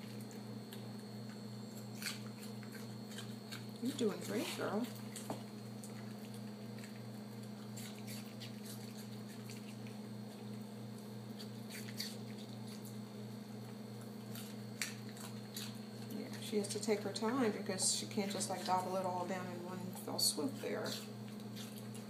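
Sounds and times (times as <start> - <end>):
dog chewing crunchy food: 0.0 - 22.0
steady low hum: 0.0 - 22.0.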